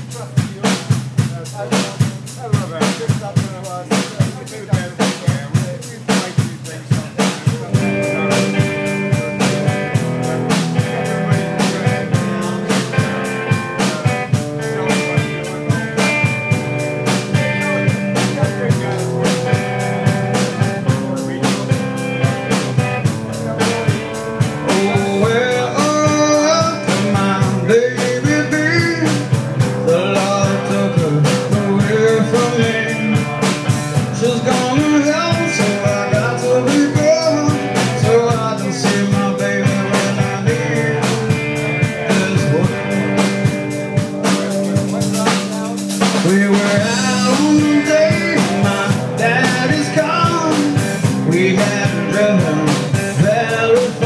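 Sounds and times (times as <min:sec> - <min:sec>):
bass guitar: 0:00.0 - 0:54.0
drum kit hits: 0:00.0 - 0:54.0
electric guitar chords: 0:06.6 - 0:54.0.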